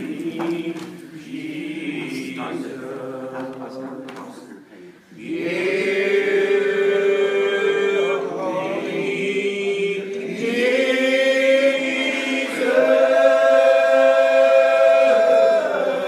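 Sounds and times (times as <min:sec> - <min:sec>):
congregation singing a hymn: 0:00.0 - 0:16.0.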